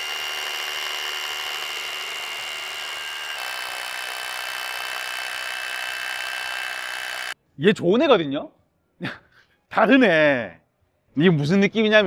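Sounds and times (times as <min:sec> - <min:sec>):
rotary hammer drilling concrete: 0:00.0 - 0:07.4.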